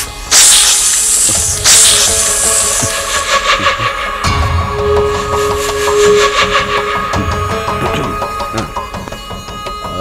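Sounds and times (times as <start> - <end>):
sharp hissing whooshes: 0.0 - 4.3
background music: 0.0 - 10.0.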